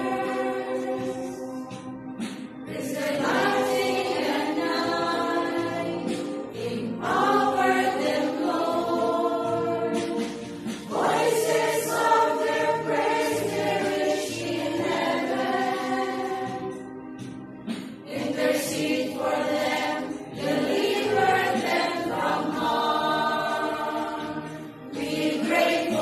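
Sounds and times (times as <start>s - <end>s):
women's choir singing a hymn: 0.0s - 1.8s, 2.7s - 16.9s, 18.0s - 26.0s.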